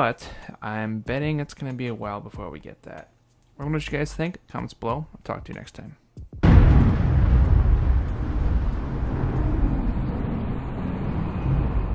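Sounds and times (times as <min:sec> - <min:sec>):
low rumble: 0:06.4 - 0:11.9.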